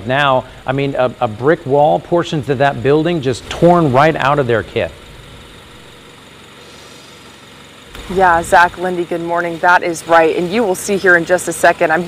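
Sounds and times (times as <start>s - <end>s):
mechanical hum: 0.0s - 12.0s
steady hiss: 2.5s - 8.9s.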